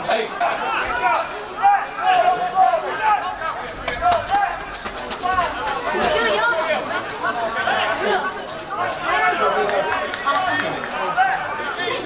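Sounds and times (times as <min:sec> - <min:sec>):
indistinct shouts and chatter: 0:00.0 - 0:12.0.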